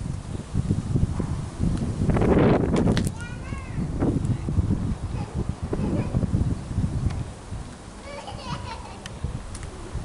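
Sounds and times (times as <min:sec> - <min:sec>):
small child calling out: 0:03.1 - 0:03.9.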